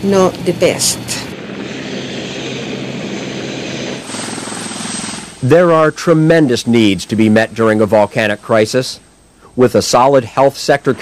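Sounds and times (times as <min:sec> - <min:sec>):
aircraft engine drone: 0:00.0 - 0:07.7.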